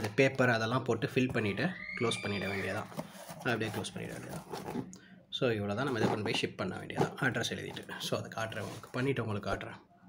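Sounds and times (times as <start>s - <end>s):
man talking: 0.0s - 9.9s.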